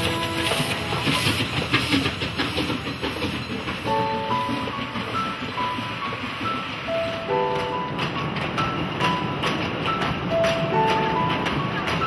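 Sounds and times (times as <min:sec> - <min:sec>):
train car wooden body rattling: 0:00.0 - 0:12.0
wheels clattering on rail joints: 0:00.0 - 0:12.0.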